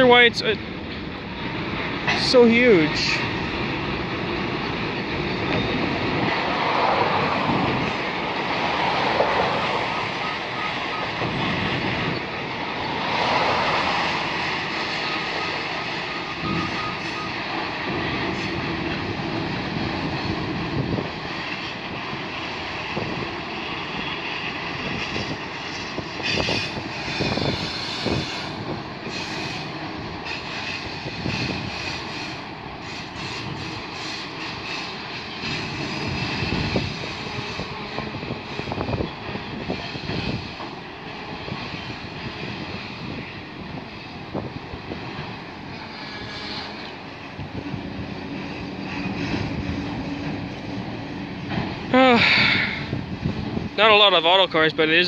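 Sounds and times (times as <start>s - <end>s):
train wheels rumbling on rail: 0.0s - 55.0s
train knocks: 0.6s - 51.9s
high-pitched wheel squeal: 14.8s - 17.5s, 26.2s - 39.0s, 45.7s - 46.9s.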